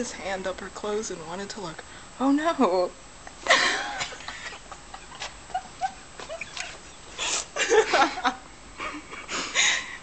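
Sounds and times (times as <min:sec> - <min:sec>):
woman stifled giggling: 0:03.4 - 0:10.0.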